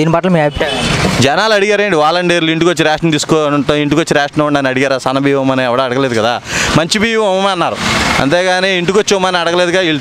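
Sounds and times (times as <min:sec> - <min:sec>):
man speaking: 0:00.0 - 0:10.0
rushing noise: 0:00.5 - 0:02.2, 0:06.2 - 0:10.0.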